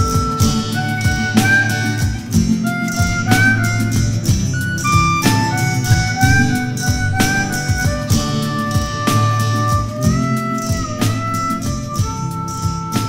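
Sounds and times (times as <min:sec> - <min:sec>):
acoustic bass: 0:00.0 - 0:13.0
acoustic guitar: 0:00.0 - 0:13.0
harmonica lead: 0:00.0 - 0:13.0
programmed drum beat: 0:00.0 - 0:13.0.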